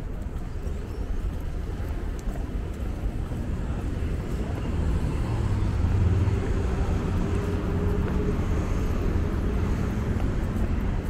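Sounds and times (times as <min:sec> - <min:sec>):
city traffic rumble: 0:00.0 - 0:11.0.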